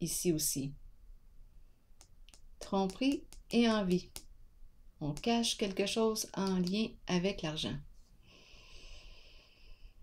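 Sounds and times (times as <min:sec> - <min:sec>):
woman breathing with soft hiss: 0:08.0 - 0:10.0.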